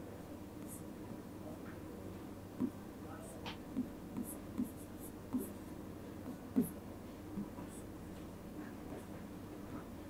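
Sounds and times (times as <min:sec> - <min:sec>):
pen tapping and scratching on whiteboard: 0:03.5 - 0:05.5.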